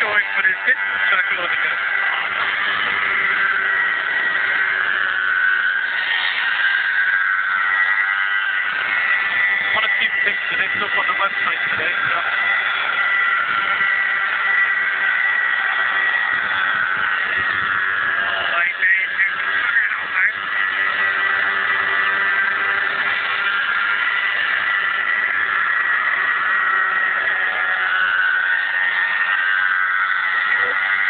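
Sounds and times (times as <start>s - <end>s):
model helicopter whine: 0.0s - 31.0s.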